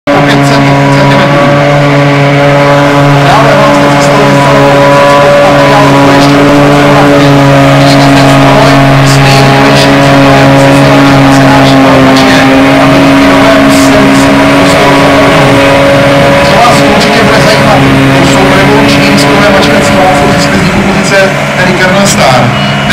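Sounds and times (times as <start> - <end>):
tractor engine: 0.0 - 22.9
forage harvester engine drone: 0.1 - 22.9.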